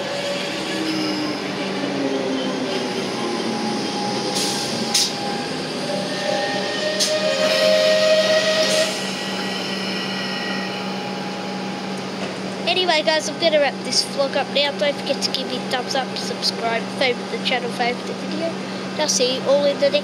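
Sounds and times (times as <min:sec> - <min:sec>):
traction motor whine: 0:00.0 - 0:12.6
electric train hum: 0:00.0 - 0:20.0.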